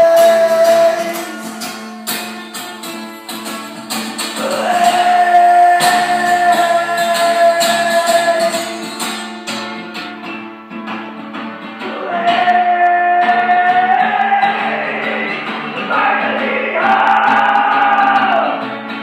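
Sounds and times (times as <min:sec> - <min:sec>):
strummed acoustic guitar: 0:00.0 - 0:19.0.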